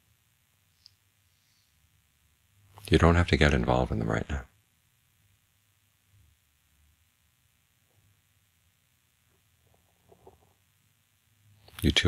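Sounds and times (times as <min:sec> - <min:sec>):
faint click: 0:00.8 - 0:01.0.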